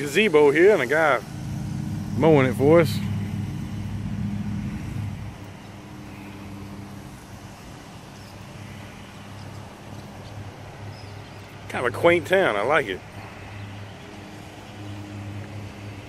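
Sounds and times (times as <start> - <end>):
lawn mower engine running: 0.0 - 16.0.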